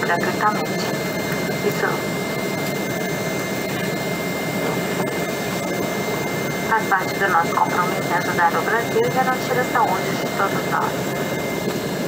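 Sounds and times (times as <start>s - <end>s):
jet engine roar in cabin: 0.0s - 12.0s
thin steady whine: 0.0s - 12.0s.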